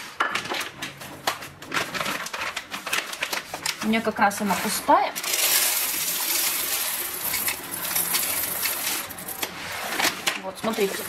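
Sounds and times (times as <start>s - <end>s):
coffee beans rattling into hopper: 4.6s - 11.0s.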